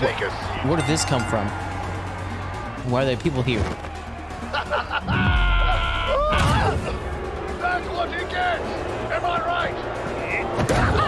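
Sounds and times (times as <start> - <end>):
soundtrack music: 0.0 - 11.0.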